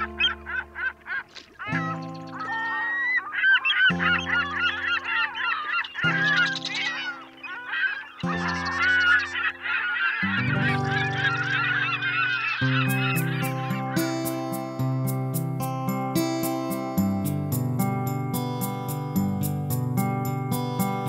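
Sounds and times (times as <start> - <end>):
flock of birds calling: 0.0 - 14.9
background music of sustained chords: 0.0 - 21.0.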